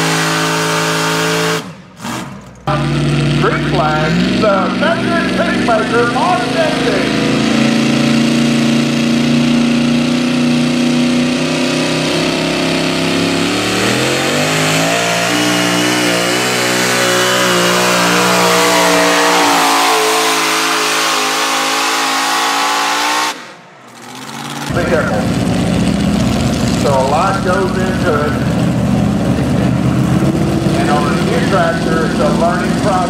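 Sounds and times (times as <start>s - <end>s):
tractor engine revving under load: 0.0s - 33.0s.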